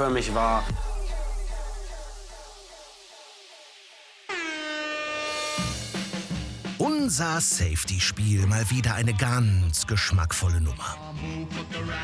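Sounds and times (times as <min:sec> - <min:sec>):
music beat: 0:00.0 - 0:04.4, 0:05.4 - 0:11.9
loud horn blast: 0:04.3 - 0:05.9.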